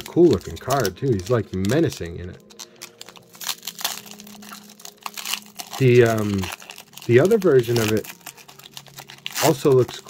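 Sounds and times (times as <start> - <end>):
foil wrapper crinkling: 0.0 - 10.0.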